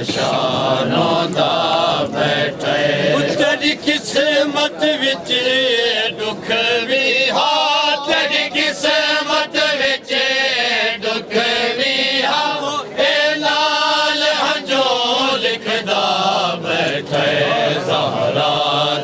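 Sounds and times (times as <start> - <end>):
backing voices: 0.0 - 19.0
man chanting lament: 2.8 - 10.4
rhythmic chest-beating slaps: 16.2 - 17.4.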